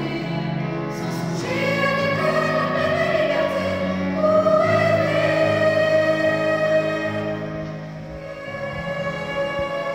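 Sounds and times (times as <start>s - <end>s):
children's choir singing: 0.0s - 9.9s.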